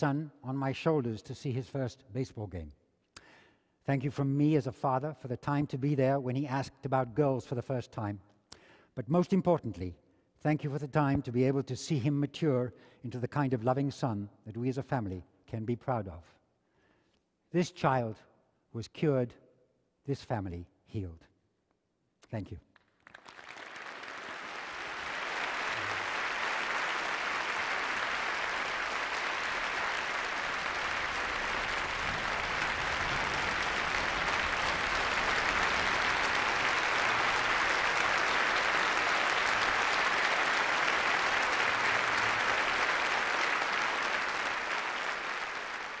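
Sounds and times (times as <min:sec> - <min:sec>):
audience applauding: 0:22.8 - 0:46.0.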